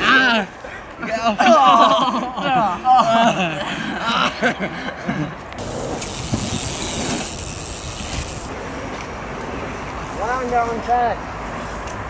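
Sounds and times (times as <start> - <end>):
steady hiss: 5.6 - 8.5.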